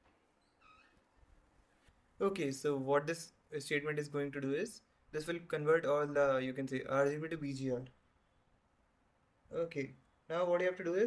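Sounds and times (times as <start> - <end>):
faint high-pitched squeak: 0.0 - 1.9.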